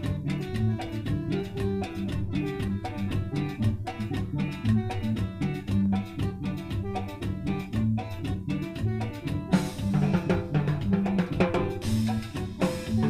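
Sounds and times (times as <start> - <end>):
bass: 0.0 - 13.0
drum-kit beat: 0.0 - 13.0
latin dance music: 0.0 - 13.0.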